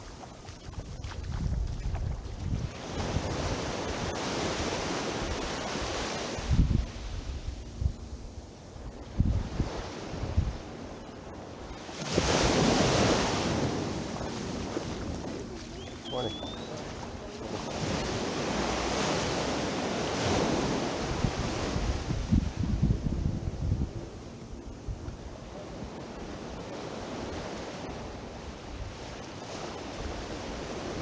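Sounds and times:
wind buffeting microphone: 0.0 - 5.7, 6.4 - 11.1, 11.7 - 29.1
small waves breaking on sand: 0.0 - 7.7, 8.8 - 24.4, 25.0 - 31.0.

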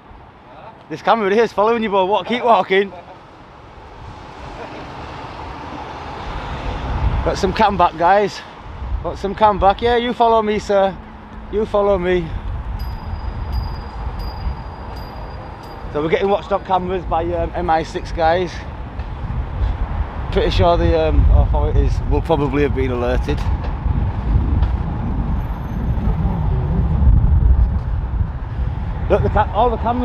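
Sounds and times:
street traffic: 0.0 - 30.0
wind buffeting microphone: 3.5 - 30.0
faint steady high tone: 12.8 - 16.1.

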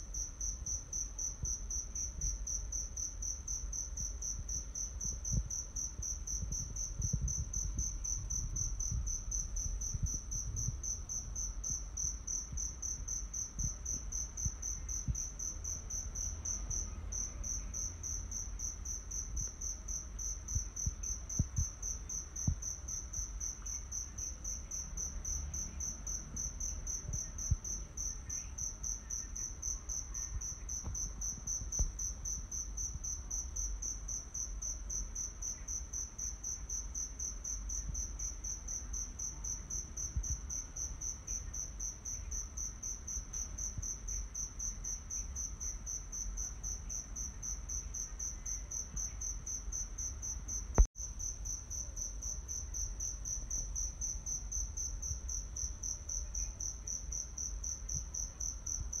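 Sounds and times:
low rumble: 5.1 - 11.8.

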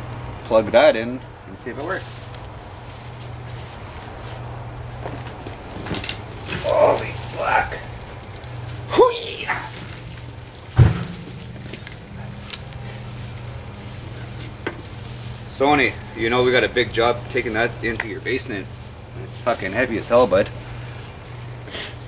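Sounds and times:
steady low hum: 0.0 - 22.0
refrigerator landing with a thump: 10.8 - 11.7.

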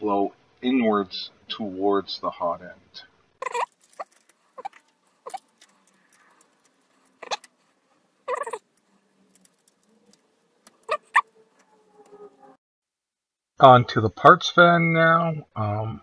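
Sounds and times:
plastic squeaks: 3.4 - 12.6.

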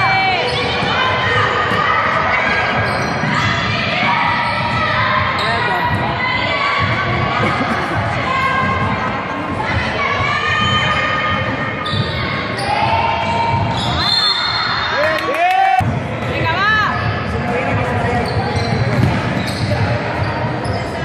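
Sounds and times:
sneakers squeaking: 0.0 - 7.7, 10.5 - 15.0, 16.2 - 21.0.

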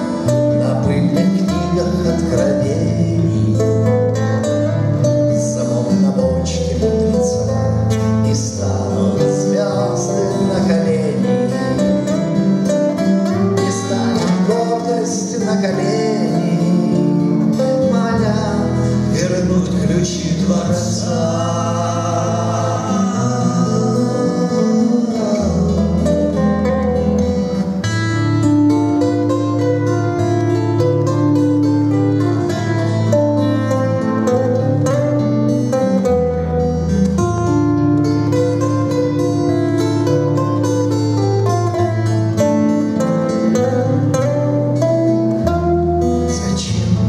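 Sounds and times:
acoustic guitars playing: 0.0 - 47.0
men singing: 0.5 - 3.7, 5.4 - 7.6, 8.2 - 12.1, 13.6 - 27.7, 46.3 - 47.0.

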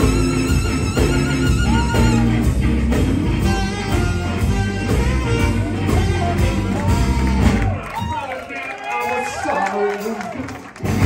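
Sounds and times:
sliding guitar notes: 0.0 - 7.7
blues-rock band playing: 0.0 - 11.0.

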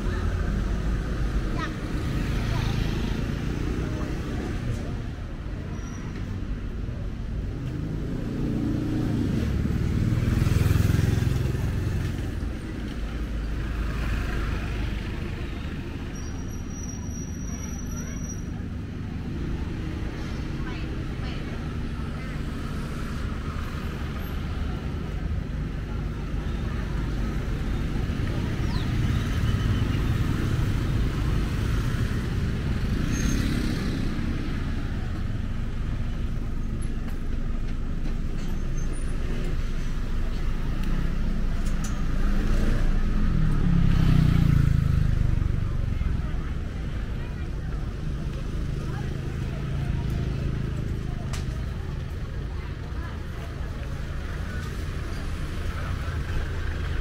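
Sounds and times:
car engines passing: 0.0 - 57.0
motorbike engines passing: 0.0 - 57.0
voices in background: 0.0 - 57.0.

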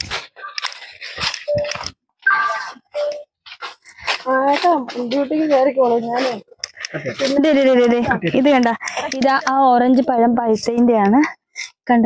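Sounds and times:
person making short vocal sounds: 6.1 - 7.5.

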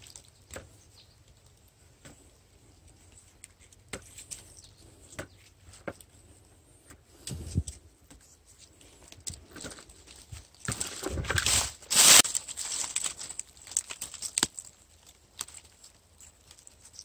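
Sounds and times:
dry twigs snapping: 0.0 - 0.7, 9.1 - 17.0
leaves rustling: 7.2 - 17.0.

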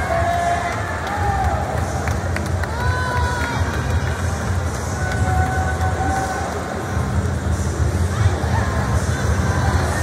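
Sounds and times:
crowd din: 0.0 - 10.0.

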